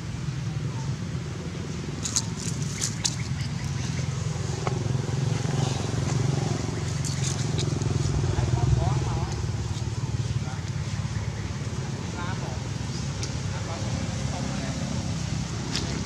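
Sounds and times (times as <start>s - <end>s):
rustles and clicks: 2.0s - 3.9s, 6.8s - 8.2s.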